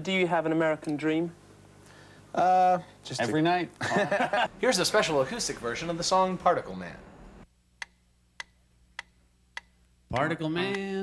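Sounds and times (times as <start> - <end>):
mechanical metronome ticking: 7.8 - 11.0.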